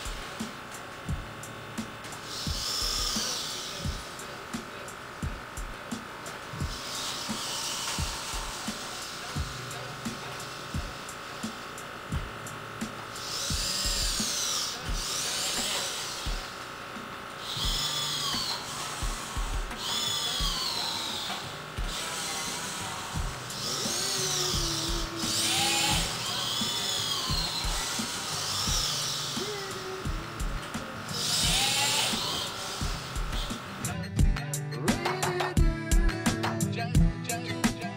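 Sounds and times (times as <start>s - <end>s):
servo motors whining: 0.0s - 34.1s.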